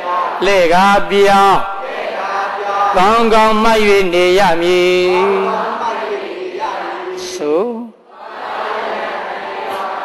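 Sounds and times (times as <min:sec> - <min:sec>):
person chanting in held notes: 0:00.0 - 0:07.9.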